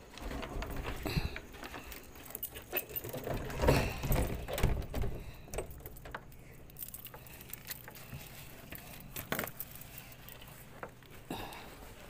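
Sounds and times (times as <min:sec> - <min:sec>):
fishing gear rattling and clinking: 0:00.0 - 0:11.5.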